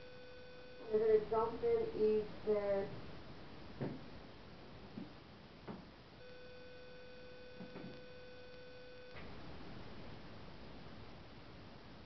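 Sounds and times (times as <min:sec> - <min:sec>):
faint steady high tone: 0:00.0 - 0:03.0, 0:06.1 - 0:09.8.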